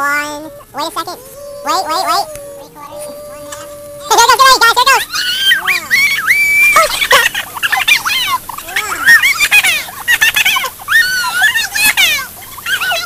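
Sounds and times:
children shrieking and squealing: 0.0s - 13.0s
sparklers flaring: 0.4s - 13.0s.

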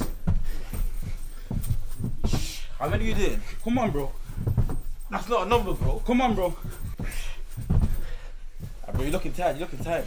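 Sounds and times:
men breathing hard: 0.0s - 5.1s, 6.5s - 9.0s
thuds on carpeted floor: 0.0s - 10.0s.

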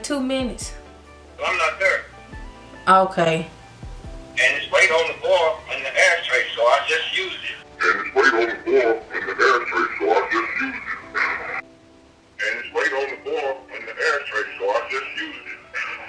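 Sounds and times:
person talking over a phone: 1.4s - 2.1s, 4.4s - 11.6s, 12.4s - 16.0s.

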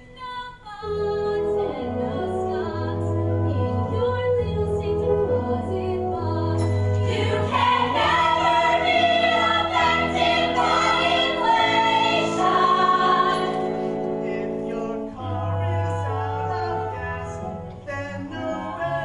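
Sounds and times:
mixed voices singing in chorus: 6.9s - 19.0s.

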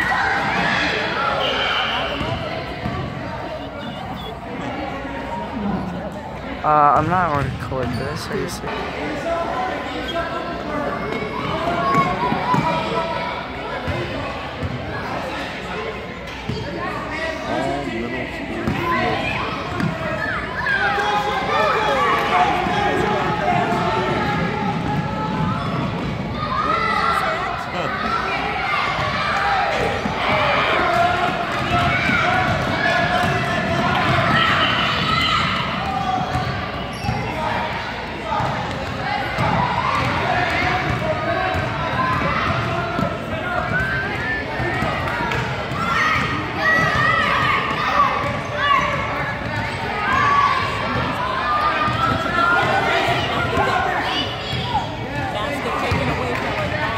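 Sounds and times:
voices calling out and chattering: 0.0s - 56.9s.

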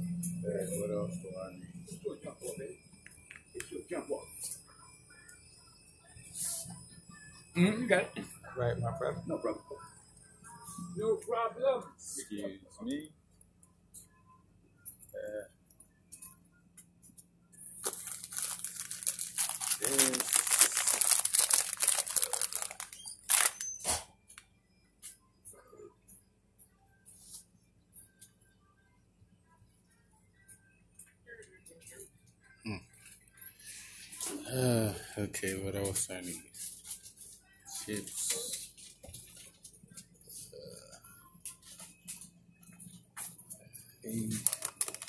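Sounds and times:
low steady hum: 0.0s - 23.5s
rapid crinkling and rustling: 17.8s - 23.6s, 44.2s - 45.0s.

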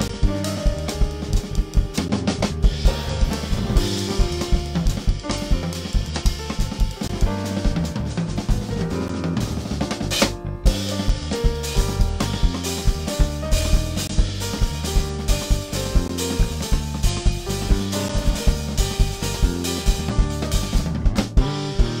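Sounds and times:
drum kit playing: 0.0s - 22.0s
keyboard chords: 0.0s - 22.0s
sustained bass notes: 0.0s - 22.0s.

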